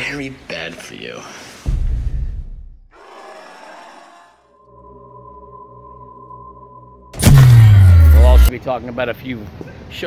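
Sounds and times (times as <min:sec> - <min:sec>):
deep boom: 0:07.2 - 0:08.5.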